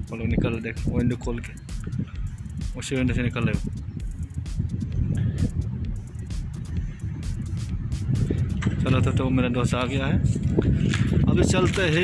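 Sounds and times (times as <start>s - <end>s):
man speaking: 0.0s - 1.6s, 2.7s - 3.7s
wind buffeting microphone: 0.0s - 12.0s.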